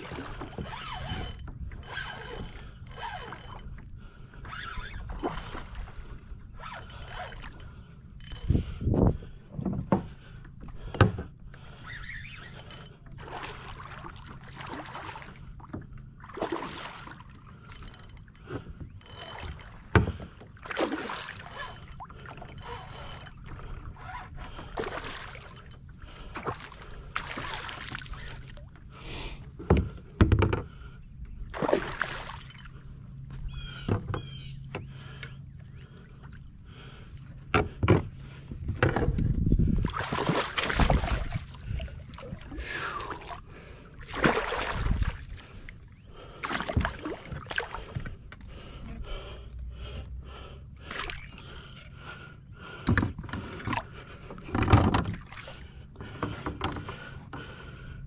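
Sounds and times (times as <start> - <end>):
water splashing: 0.0 - 1.3, 13.2 - 17.8, 19.3 - 28.7, 31.5 - 32.8, 39.8 - 51.7
fish splashing: 20.6 - 22.6, 24.7 - 28.6, 31.5 - 32.8, 39.9 - 43.4, 44.0 - 45.6.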